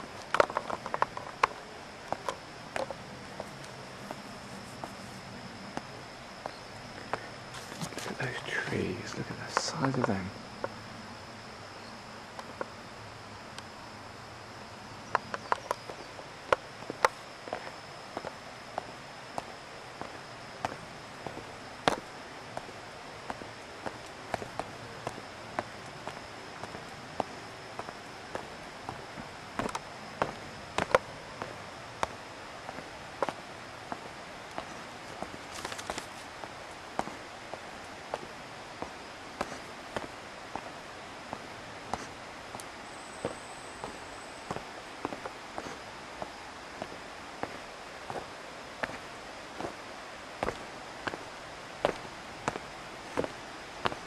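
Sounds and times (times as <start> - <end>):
footsteps on stone path: 0.0 - 8.6, 15.0 - 54.0
faint hiss: 0.0 - 54.0
thin high steady tone: 0.0 - 54.0.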